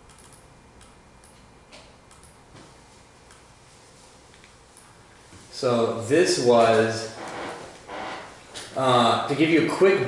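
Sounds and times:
low room hum: 0.0s - 10.0s.

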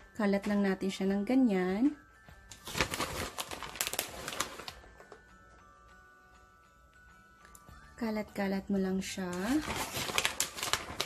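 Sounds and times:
faint background music: 0.0s - 11.0s
plastic bag rustling and crinkling: 2.5s - 4.9s, 9.3s - 11.0s.

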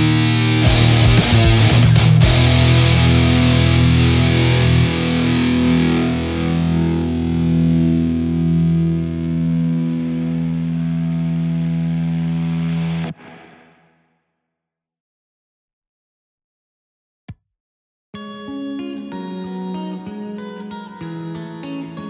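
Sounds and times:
distorted electric guitar chord: 0.0s - 14.0s.

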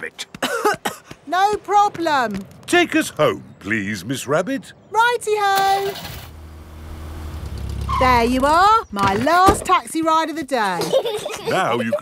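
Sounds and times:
cartoon car engine hum: 5.6s - 8.9s.

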